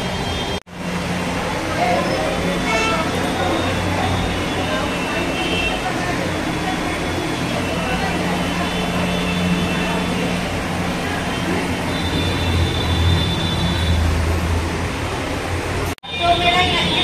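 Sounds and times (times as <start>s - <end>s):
steady background din: 0.0s - 17.0s.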